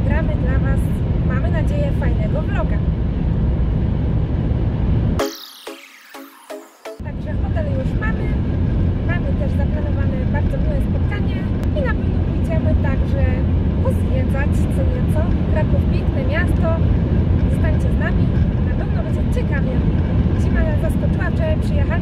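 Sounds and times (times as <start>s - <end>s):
car road and engine rumble: 0.0s - 5.2s, 7.0s - 22.0s.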